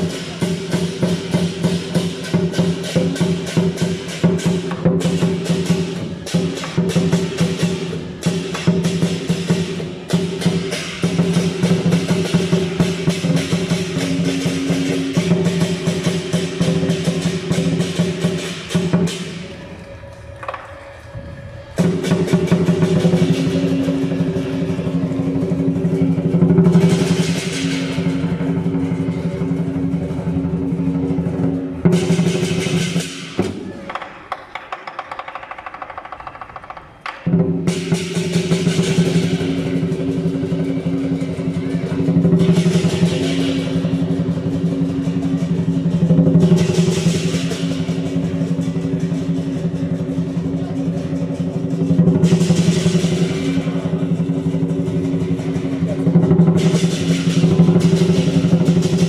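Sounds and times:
fast drum roll: 0:00.0 - 0:19.5, 0:21.8 - 0:59.0
hand cymbals clashing: 0:00.0 - 0:33.8, 0:37.2 - 0:59.0.

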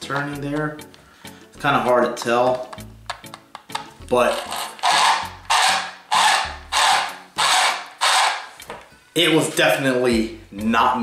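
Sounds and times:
gears meshing with rasping strokes: 0:04.4 - 0:08.6.

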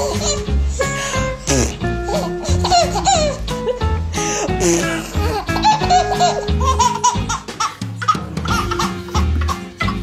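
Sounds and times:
baby laughing: 0:00.0 - 0:10.0
background music: 0:00.0 - 0:10.0.

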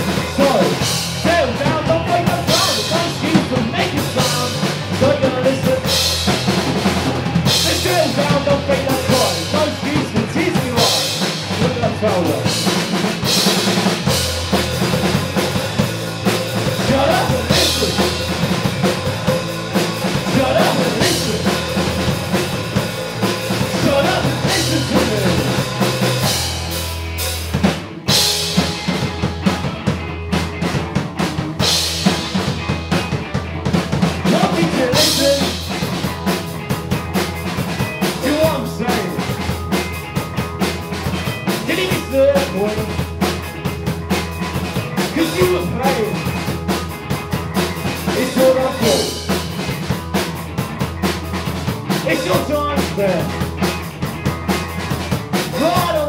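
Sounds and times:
live rock band playing: 0:00.0 - 0:56.0.

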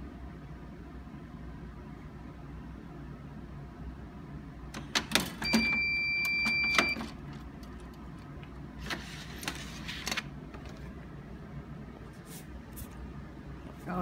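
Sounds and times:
machine low hum: 0:00.0 - 0:14.0.

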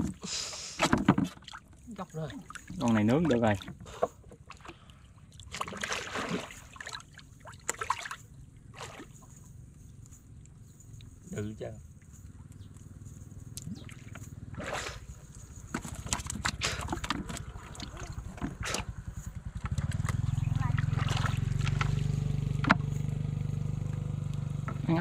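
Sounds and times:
water sloshing and splashing: 0:00.0 - 0:25.0
small engine droning: 0:01.7 - 0:25.0
man swimming: 0:03.8 - 0:09.9, 0:13.4 - 0:19.5
gill net being handled: 0:13.9 - 0:18.9.

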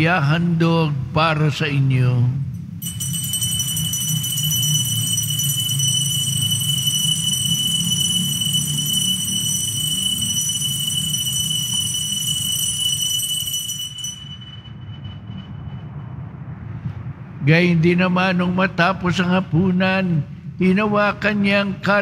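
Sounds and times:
altar bells ringing: 0:02.6 - 0:16.0.

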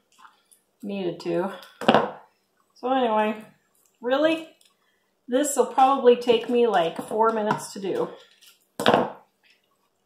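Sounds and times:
faint packet handling: 0:08.2 - 0:08.8.

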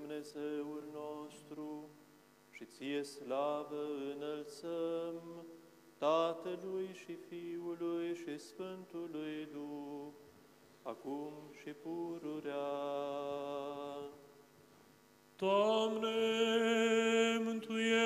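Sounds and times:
liturgical chant: 0:00.0 - 0:10.2, 0:10.9 - 0:14.3, 0:15.4 - 0:18.0.

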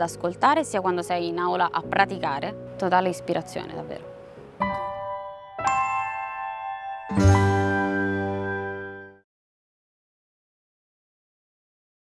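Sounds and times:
deep ringing chime chord: 0:04.8 - 0:09.2
sudden hit with bright shimmer: 0:07.1 - 0:09.1.

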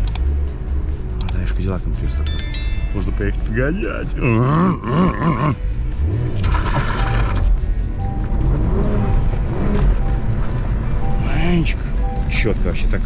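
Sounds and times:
background music: 0:00.0 - 0:13.0
car engine revving: 0:04.3 - 0:07.3, 0:08.2 - 0:11.3.

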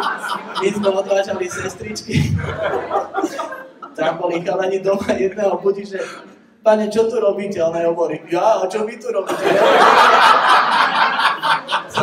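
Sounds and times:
audience laughing: 0:00.0 - 0:06.2, 0:09.3 - 0:12.0.

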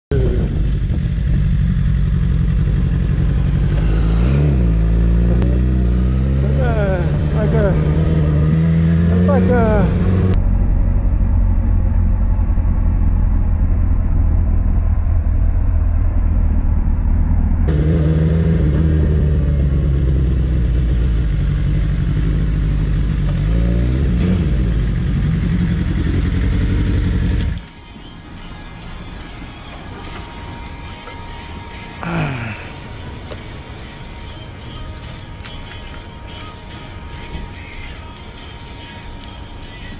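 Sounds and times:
motorcycle engine running: 0:00.1 - 0:27.7
wind rumble on microphone: 0:00.2 - 0:02.0.

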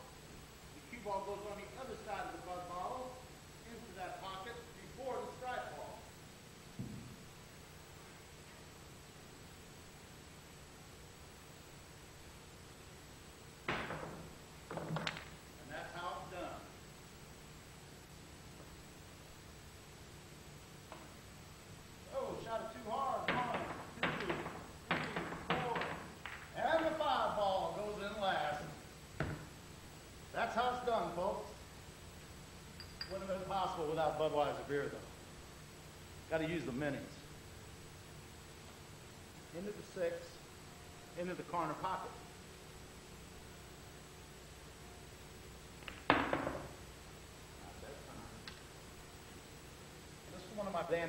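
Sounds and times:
man talking: 0:00.8 - 0:06.1, 0:15.6 - 0:16.7, 0:22.1 - 0:26.0, 0:26.6 - 0:28.8, 0:30.4 - 0:31.6, 0:33.1 - 0:35.1, 0:36.3 - 0:37.3, 0:39.5 - 0:40.4, 0:41.2 - 0:42.2, 0:50.3 - 0:51.0
billiard balls clicking together: 0:13.7 - 0:15.4, 0:23.2 - 0:27.0.

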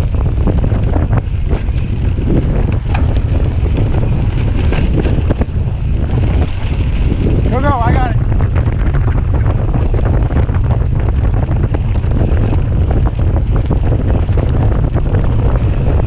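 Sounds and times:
bike clicks and rattles: 0:00.0 - 0:16.0
wind buffeting microphone: 0:00.0 - 0:16.0.

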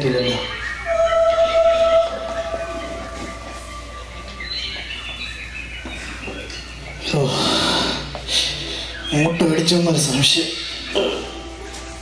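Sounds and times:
train whistle: 0:00.8 - 0:04.8.

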